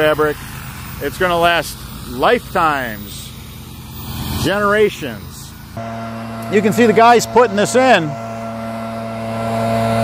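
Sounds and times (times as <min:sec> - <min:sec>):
low engine hum: 0:05.2 - 0:10.0.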